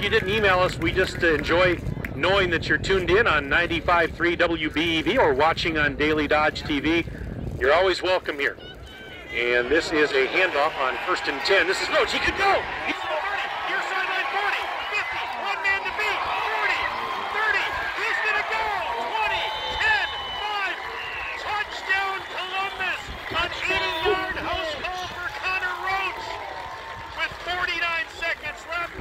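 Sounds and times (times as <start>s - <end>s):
crowd cheering and shouting: 8.6s - 29.0s.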